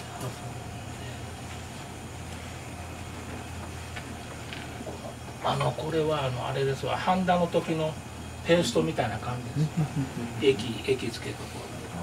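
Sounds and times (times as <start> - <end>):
gas burner flame rumble: 0.0 - 12.0.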